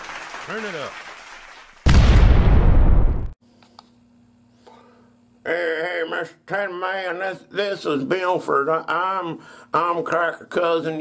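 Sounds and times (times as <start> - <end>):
loud explosion-like blast: 1.8 - 3.4.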